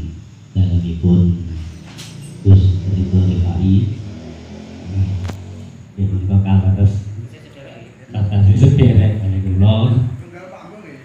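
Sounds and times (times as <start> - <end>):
low murmur of man's voice: 2.4 - 4.0, 6.0 - 11.0.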